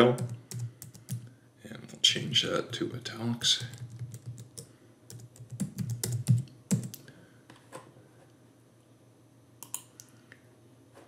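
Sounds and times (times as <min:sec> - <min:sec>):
keyboard keys clicking: 0:00.2 - 0:01.2, 0:03.6 - 0:07.0.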